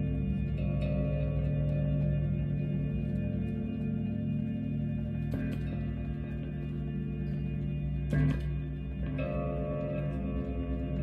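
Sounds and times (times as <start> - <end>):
electric guitar ambient notes: 0.0 - 11.0.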